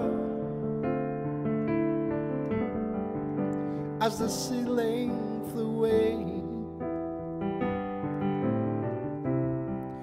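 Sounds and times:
piano chords on keyboard: 0.0s - 10.0s.

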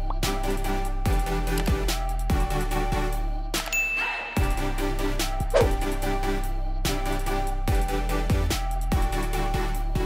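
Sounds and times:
electronic background music: 0.0s - 10.0s
bright ding: 3.7s - 4.6s.

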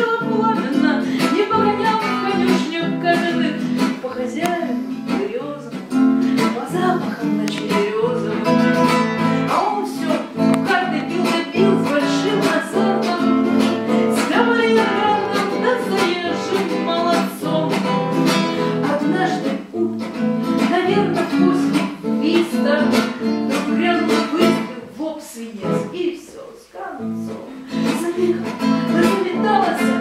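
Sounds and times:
acoustic guitar strumming: 0.0s - 25.0s, 27.0s - 30.0s.

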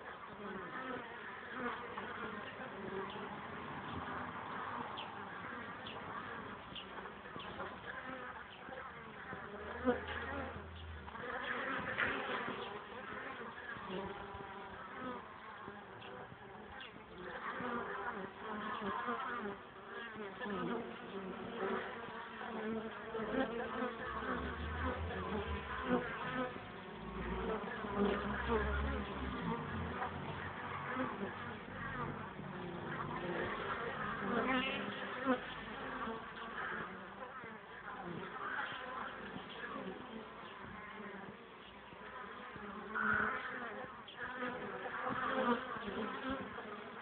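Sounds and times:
honeybees buzzing: 0.0s - 47.0s.

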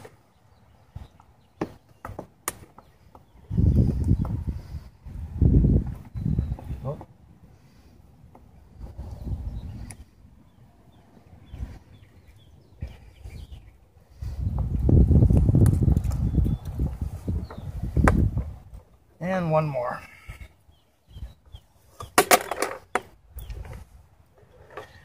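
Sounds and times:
birds chirping faintly: 0.0s - 25.0s.

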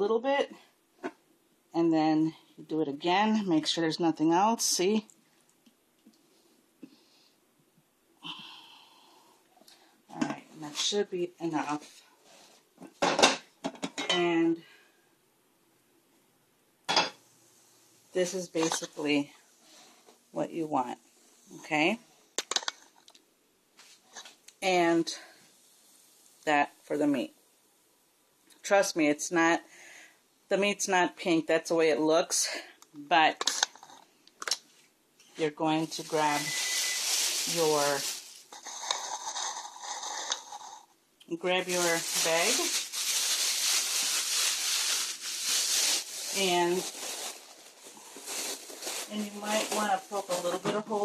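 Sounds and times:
plastic bag rustling: 18.2s - 19.9s, 35.4s - 40.8s, 41.4s - 51.0s.

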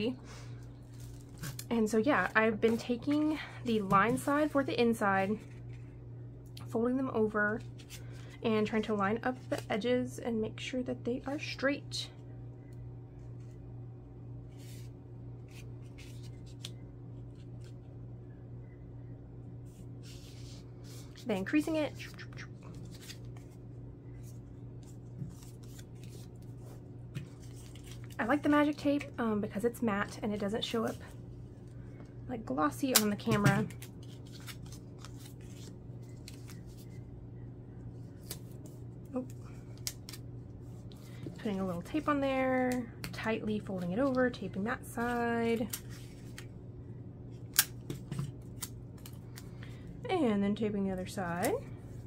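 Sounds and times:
steady low hum: 0.0s - 52.0s
paper card rustling: 0.8s - 6.0s, 14.5s - 17.9s, 19.7s - 29.1s, 32.9s - 37.0s, 43.6s - 46.5s.

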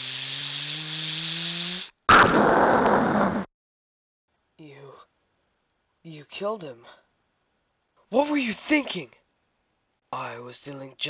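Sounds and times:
blaster charge-up hiss and hum: 0.0s - 3.5s.

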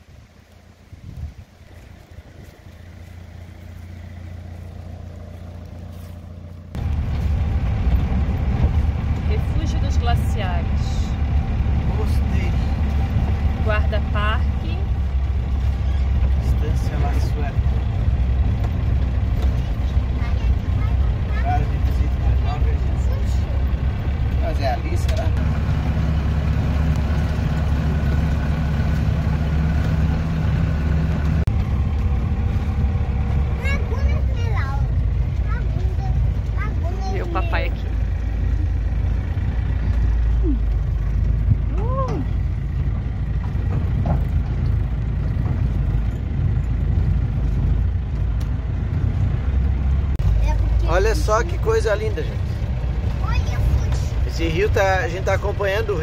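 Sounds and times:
engine drone: 0.0s - 56.0s
tyre and road rumble: 0.0s - 56.0s.

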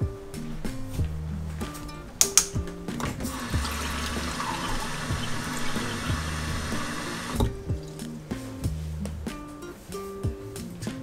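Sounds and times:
tap running into steel sink: 2.4s - 7.6s.

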